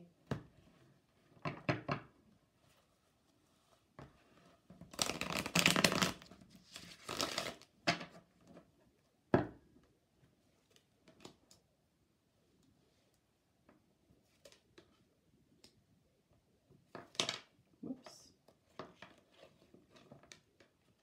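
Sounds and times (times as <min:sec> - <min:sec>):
cards being shuffled: 0:04.8 - 0:07.7.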